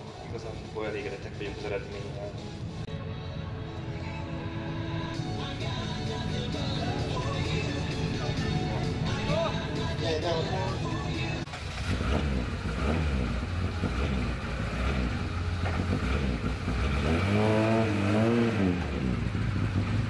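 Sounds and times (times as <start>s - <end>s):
car engine running and revving: 5.5s - 20.0s.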